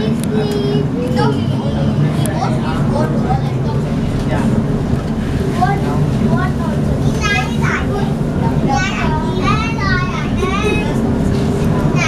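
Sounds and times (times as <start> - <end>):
children calling and chattering: 0.0 - 12.0
train running rumble: 0.0 - 12.0.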